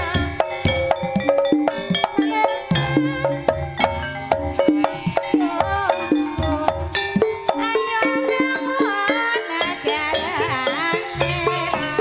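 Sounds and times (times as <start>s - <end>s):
sliding melody line: 0.0s - 12.0s
struck keyed instruments: 0.0s - 12.0s.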